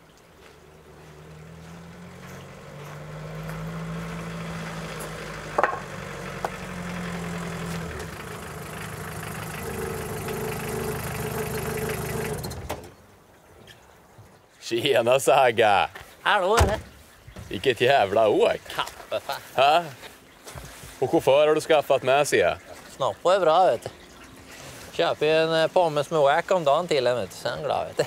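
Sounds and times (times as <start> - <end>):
small car engine running: 0.5 - 13.0.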